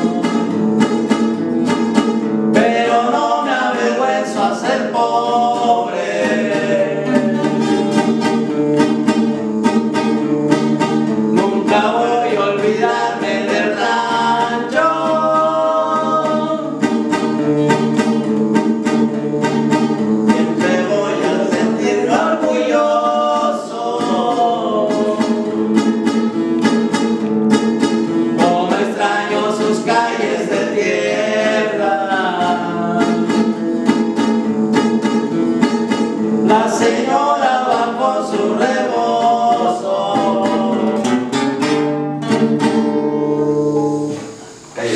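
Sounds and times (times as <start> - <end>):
strummed acoustic guitars: 0.0 - 44.9
men singing in duet: 2.5 - 7.9, 11.2 - 16.9, 20.3 - 26.1, 28.3 - 33.8, 36.2 - 41.2.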